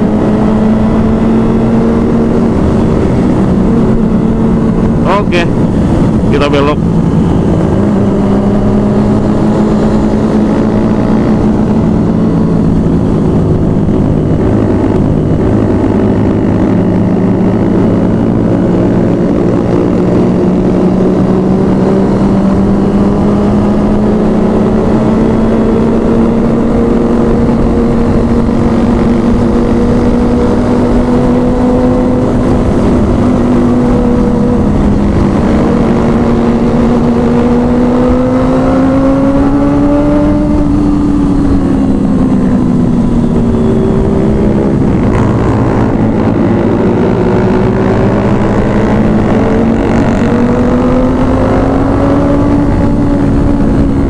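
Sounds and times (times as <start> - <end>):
motorcycle engine running: 0.0 - 54.0
road and wind rumble: 0.0 - 54.0.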